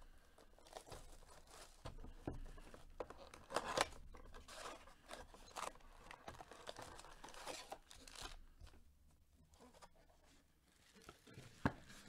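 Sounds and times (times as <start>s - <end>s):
foil packs rustling and crinkling: 0.0s - 8.8s, 10.6s - 12.0s.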